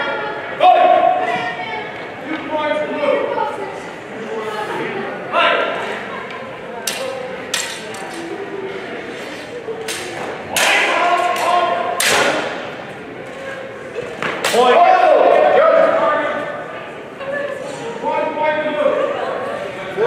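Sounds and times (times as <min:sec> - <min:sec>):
steel swords clashing: 0:06.9 - 0:08.2.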